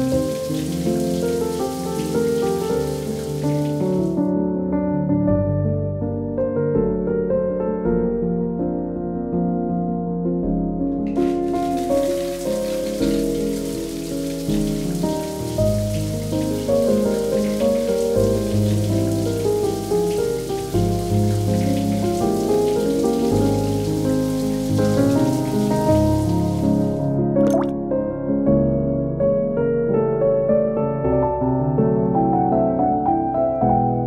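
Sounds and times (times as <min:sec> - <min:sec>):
shower spray hissing: 0:00.0 - 0:04.2, 0:11.2 - 0:26.9
soft piano music: 0:00.0 - 0:34.0.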